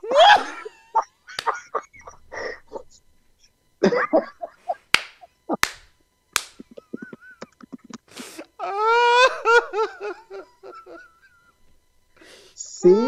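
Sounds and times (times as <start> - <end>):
men laughing: 0.0 - 3.0, 3.8 - 5.7, 6.6 - 11.6
sharp slaps: 4.9 - 6.8.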